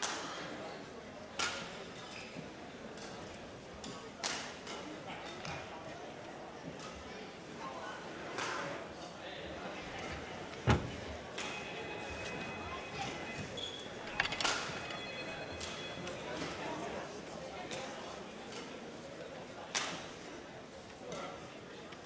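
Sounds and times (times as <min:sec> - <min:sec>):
loud thud: 0:10.7 - 0:11.1.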